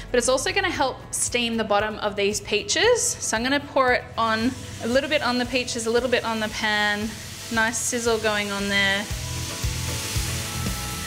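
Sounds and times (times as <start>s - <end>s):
vinegar sizzling in a hot pan: 3.8s - 11.0s.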